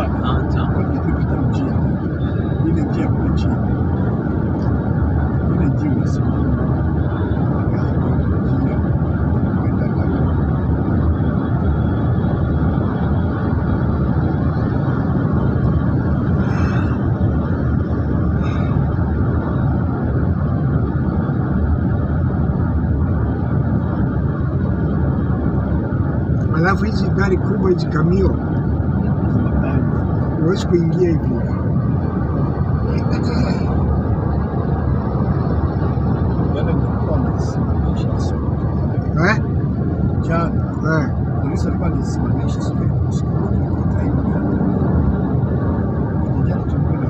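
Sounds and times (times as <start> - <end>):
road and engine rumble in cabin: 0.0 - 47.0.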